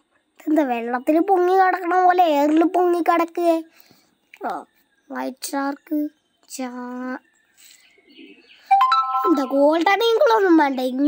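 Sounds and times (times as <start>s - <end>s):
held voiced note: 8.7s - 9.6s
rising chime notes: 8.7s - 9.6s.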